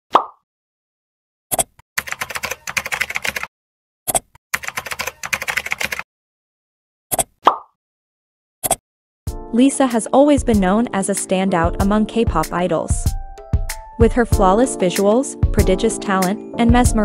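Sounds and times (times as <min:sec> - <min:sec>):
rapid keyboard typing: 0:02.0 - 0:03.5, 0:04.6 - 0:06.0
interface pop: 0:07.1 - 0:07.8.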